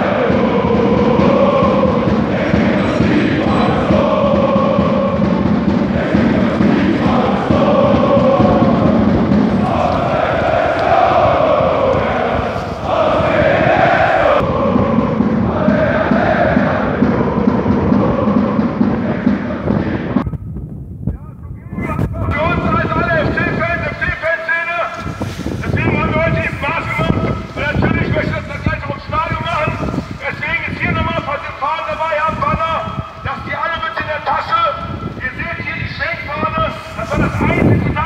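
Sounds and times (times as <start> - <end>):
crowd chanting in unison: 0.0 - 20.2.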